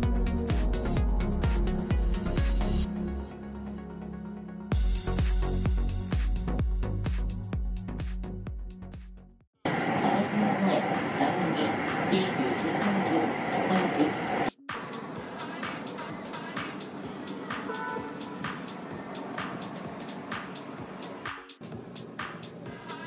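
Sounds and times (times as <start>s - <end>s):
electronic dance music: 0.0s - 2.9s, 9.8s - 23.0s
train running noise inside: 9.7s - 16.6s
indistinct voices: 9.7s - 19.8s
outdoor ambience: 9.7s - 23.0s.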